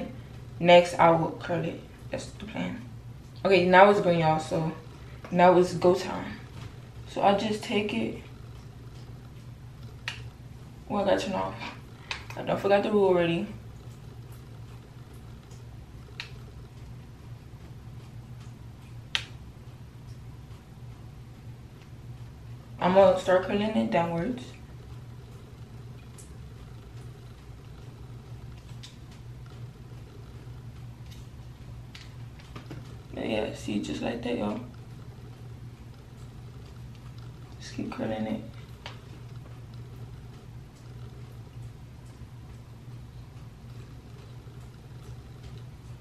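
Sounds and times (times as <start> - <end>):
low room hum: 0.0 - 46.0.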